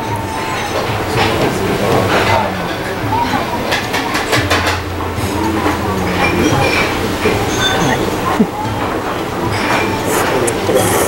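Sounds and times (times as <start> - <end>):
faint background sounds: 0.0 - 11.0
steady low hum: 0.9 - 9.7.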